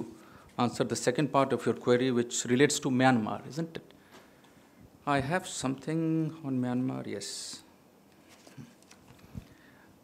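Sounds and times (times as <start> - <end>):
papers rustling: 8.2 - 9.6.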